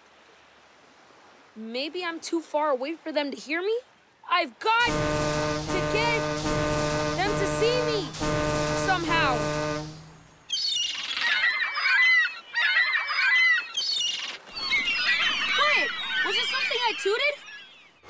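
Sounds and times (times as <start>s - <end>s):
cartoon train horn blast: 4.8s - 10.4s
seagulls squawking: 4.8s - 18.0s.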